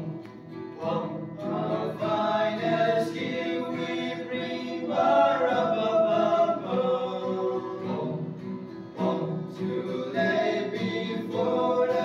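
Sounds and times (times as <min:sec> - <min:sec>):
young men singing as a choir: 0:00.8 - 0:08.4, 0:09.0 - 0:12.0.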